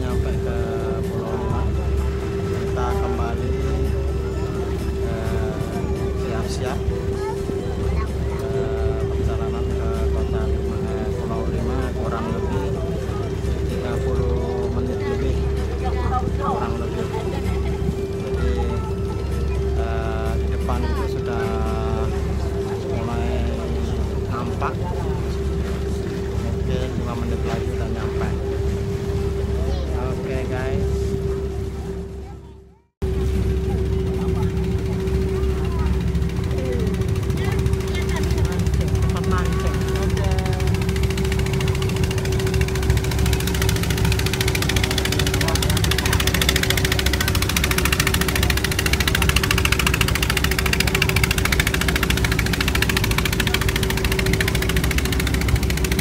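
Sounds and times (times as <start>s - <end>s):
boat engine droning: 0.0s - 56.0s
faint voices: 0.0s - 56.0s.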